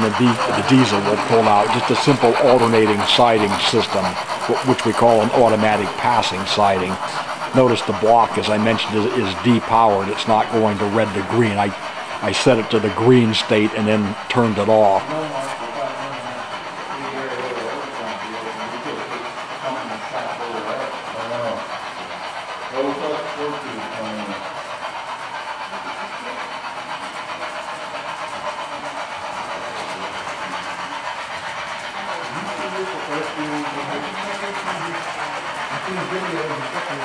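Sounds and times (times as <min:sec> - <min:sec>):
model train motors whirring: 0:00.0 - 0:37.0.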